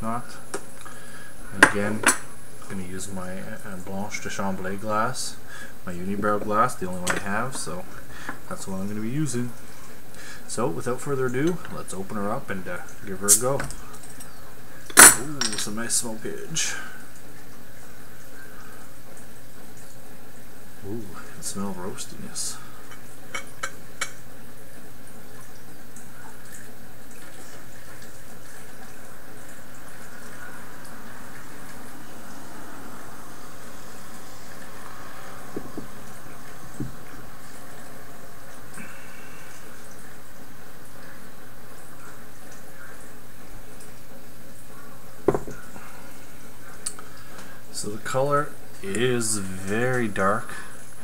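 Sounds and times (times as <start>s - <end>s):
ale pouring into a glass: 25.3s - 43.1s.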